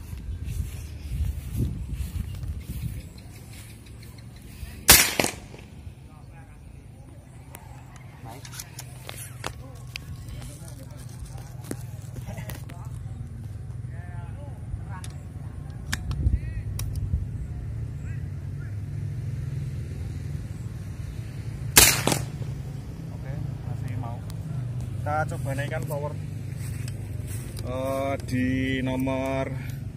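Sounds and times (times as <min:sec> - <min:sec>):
steady low rumble: 0:00.0 - 0:08.3, 0:19.9 - 0:29.9
air rifle crack: 0:04.8 - 0:05.8, 0:21.8 - 0:22.6.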